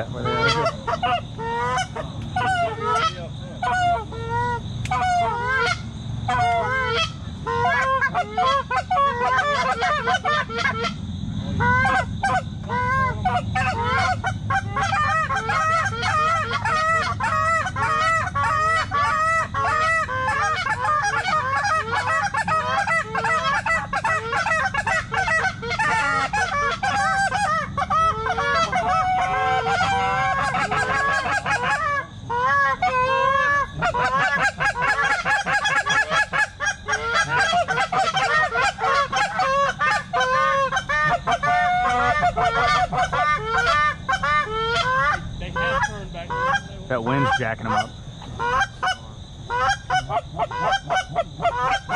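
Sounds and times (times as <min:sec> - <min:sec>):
geese honking: 0:00.0 - 0:51.9.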